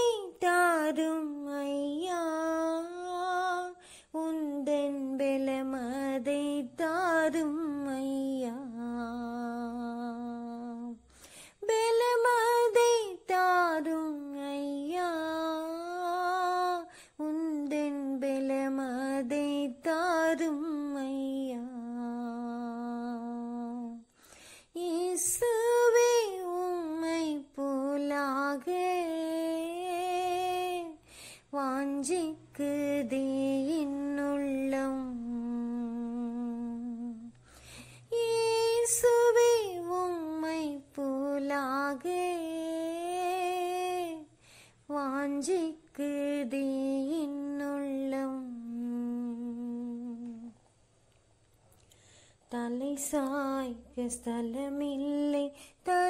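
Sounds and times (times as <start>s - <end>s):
breath: 3.8s - 4.2s, 11.0s - 11.6s, 16.9s - 17.2s, 24.1s - 24.8s, 31.0s - 31.5s, 37.4s - 38.1s, 44.3s - 44.9s, 51.8s - 52.5s.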